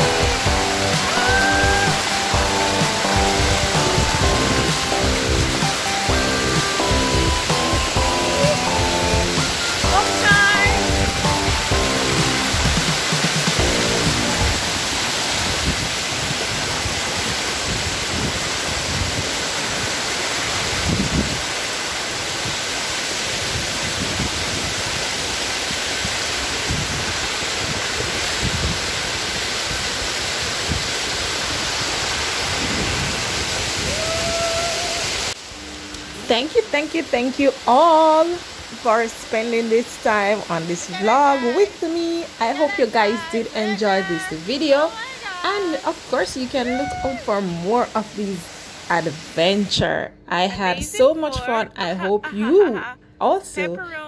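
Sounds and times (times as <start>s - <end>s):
background music: 0.0s - 14.9s
waterfall rushing: 0.0s - 49.0s.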